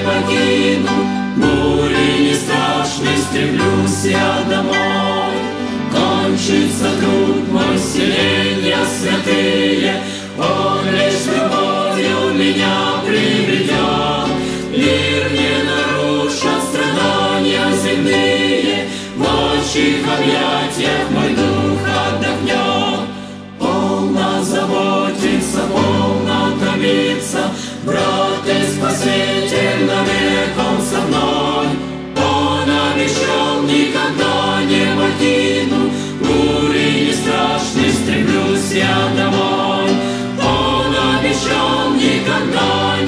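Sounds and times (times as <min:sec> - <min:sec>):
choir singing with instruments: 0:00.0 - 0:43.0.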